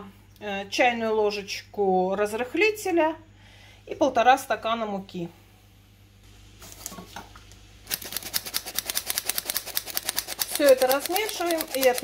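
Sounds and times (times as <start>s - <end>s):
flour sifter clicking: 7.9s - 12.0s.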